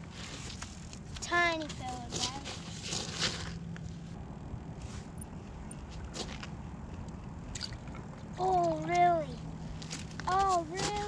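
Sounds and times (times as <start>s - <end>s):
low steady background noise: 0.0s - 11.0s
child's wordless voice: 1.2s - 2.6s, 8.4s - 9.4s, 10.2s - 11.0s.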